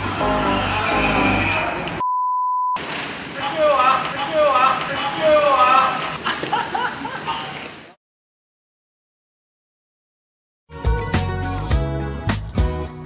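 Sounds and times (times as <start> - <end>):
background music: 0.0 - 2.0, 10.7 - 13.0
short steady beep tone: 2.0 - 2.8
man laughing: 3.4 - 7.7.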